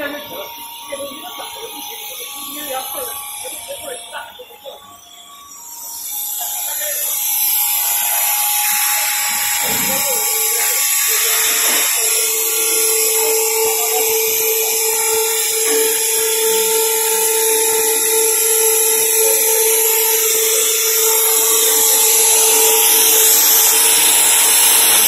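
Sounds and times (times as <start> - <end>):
loud machinery hiss: 0.0 - 25.0
machinery high-pitched whine: 0.0 - 25.0.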